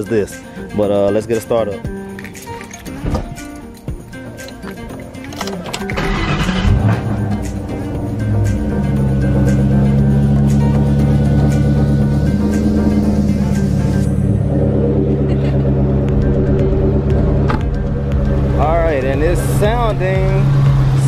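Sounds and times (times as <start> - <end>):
background music: 0.0 - 21.0
car engine cranking and idling: 1.9 - 21.0.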